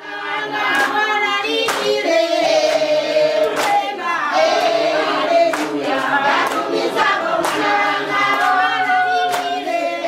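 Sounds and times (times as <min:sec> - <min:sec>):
group singing: 0:00.0 - 0:10.0
hand clapping: 0:00.7 - 0:02.0, 0:02.6 - 0:03.9, 0:05.4 - 0:09.8.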